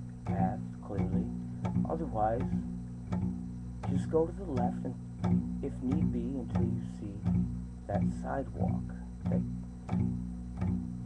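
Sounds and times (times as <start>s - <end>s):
guitar plucked: 0.0s - 11.0s.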